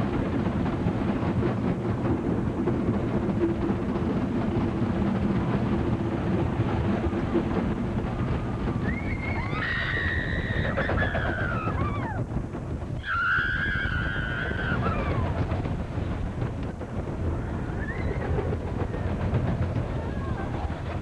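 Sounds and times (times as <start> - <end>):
roller coaster rumbling on track: 0.0 - 21.0
wind buffeting microphone: 0.0 - 21.0
riders screaming: 8.8 - 12.2, 13.0 - 15.4, 17.3 - 19.1.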